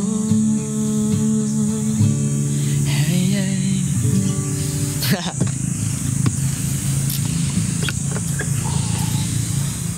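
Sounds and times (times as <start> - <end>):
motor vehicle running: 4.6 - 9.9
indistinct voices: 7.1 - 9.8.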